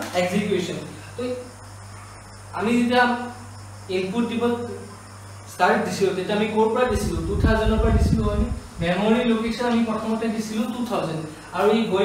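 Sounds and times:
steady low hum: 0.0 - 12.0
man speaking: 5.5 - 12.0.

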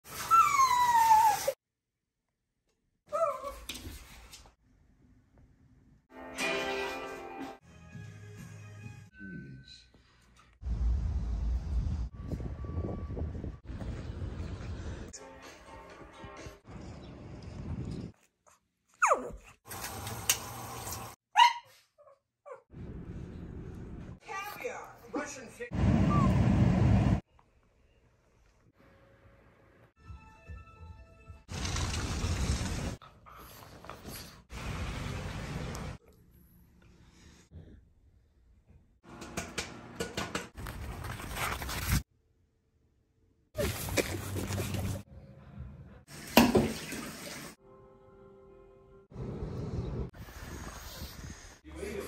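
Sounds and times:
dog yelping: 21.3 - 22.7.

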